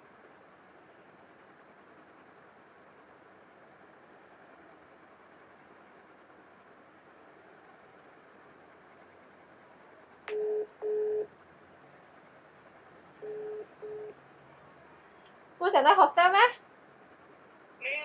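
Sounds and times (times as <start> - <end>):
telephone ringing tone beeps: 10.3 - 11.3, 13.2 - 14.2
steady hiss: 14.2 - 18.0.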